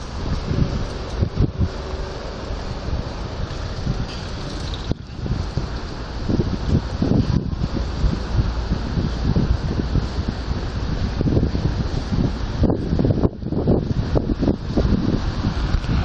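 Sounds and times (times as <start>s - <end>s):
road traffic hiss: 0.0s - 16.0s
wind buffeting microphone: 0.0s - 16.0s.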